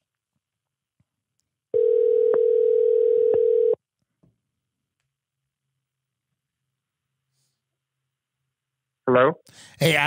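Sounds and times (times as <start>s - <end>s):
telephone ringback tone: 1.8s - 3.8s.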